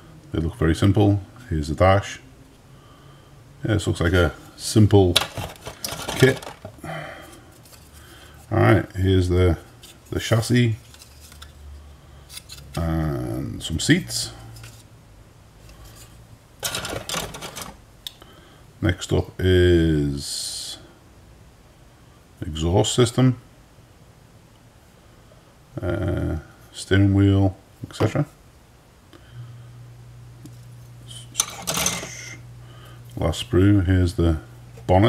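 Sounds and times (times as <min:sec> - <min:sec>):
faint low hum: 0:00.0 - 0:35.0
plastic sprues rustling and clattering: 0:05.2 - 0:08.0, 0:10.7 - 0:11.6, 0:15.7 - 0:17.8, 0:31.4 - 0:32.2.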